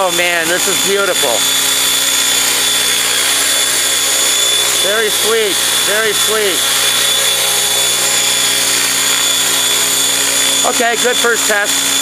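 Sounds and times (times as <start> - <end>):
helicopter motor whine: 0.0 - 12.0
rotor noise: 0.0 - 12.0.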